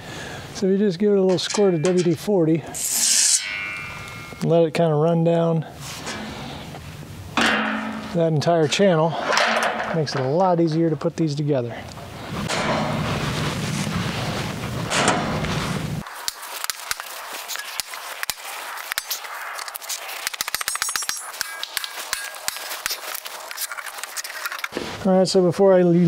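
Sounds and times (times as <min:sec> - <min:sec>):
sharp metallic taps and clicks: 0:17.8 - 0:23.0.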